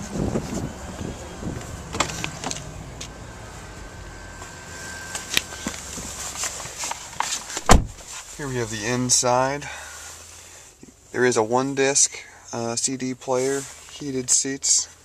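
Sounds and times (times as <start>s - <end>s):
rustling and shuffling: 0.0s - 11.0s, 13.2s - 15.0s
car door handle clicks: 7.6s - 8.0s.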